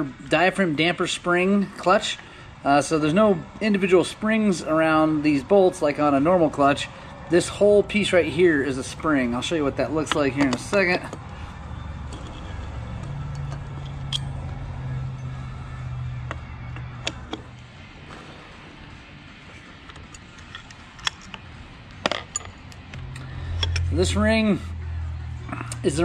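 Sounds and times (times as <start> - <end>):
low steady hum: 0.0 - 26.0
metallic tool clicks and clinks: 12.0 - 14.6, 19.9 - 24.0.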